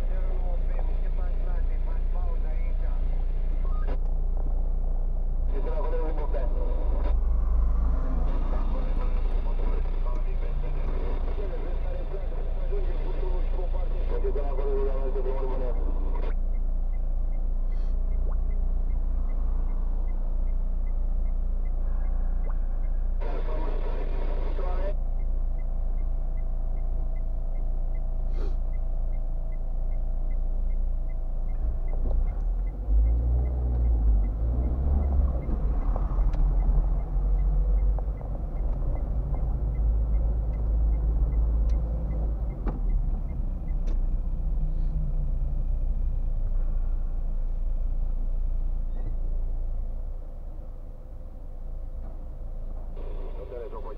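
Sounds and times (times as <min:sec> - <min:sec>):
car engine and road rumble: 0:00.0 - 0:53.9
light regular ticking: 0:14.9 - 0:23.2, 0:24.9 - 0:48.1.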